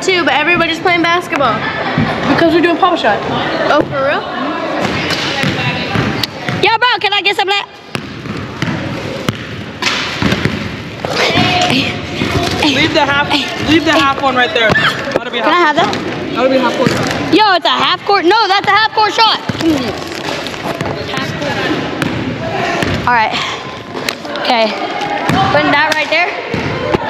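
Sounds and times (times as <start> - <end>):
chatter of many people: 0.0 - 27.0
basketball bouncing on gym floor: 4.8 - 7.2, 7.9 - 17.6, 18.3 - 23.3, 25.2 - 27.0.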